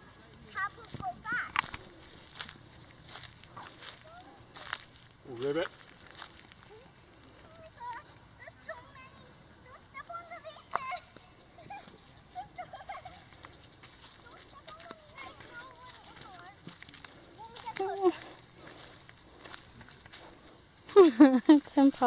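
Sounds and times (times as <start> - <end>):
footsteps on gravel: 0.0 - 8.9, 13.2 - 22.0
children talking and calling: 0.0 - 22.0.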